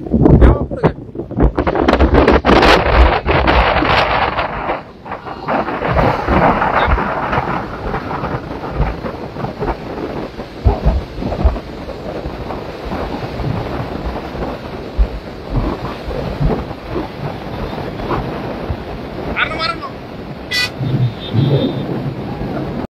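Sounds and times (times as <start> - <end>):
tyre and road noise: 0.0 - 22.8
wind buffeting microphone: 0.0 - 22.9.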